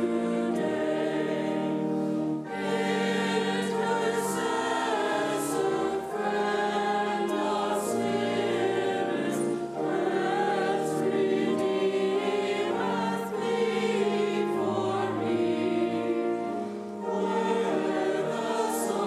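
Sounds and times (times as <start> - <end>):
mixed choir singing: 0.0 - 19.0.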